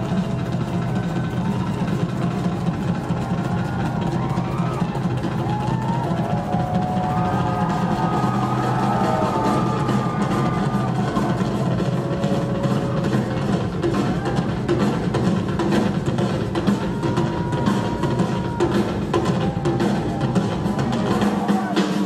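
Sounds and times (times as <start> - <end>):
audience shouting: 0.0 - 14.9, 16.5 - 22.0
live rock drum solo: 0.0 - 22.0.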